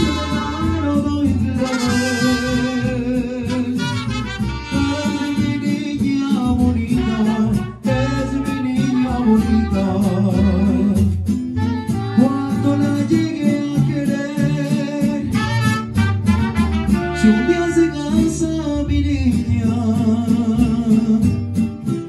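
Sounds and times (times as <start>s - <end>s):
man singing into microphone: 0.0s - 11.2s, 12.0s - 16.1s, 17.0s - 21.4s
mariachi band playing: 0.0s - 22.0s.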